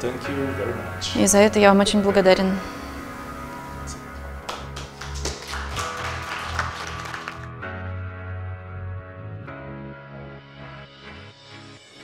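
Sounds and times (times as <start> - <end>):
background music: 0.0 - 12.0
hand claps: 4.4 - 7.5.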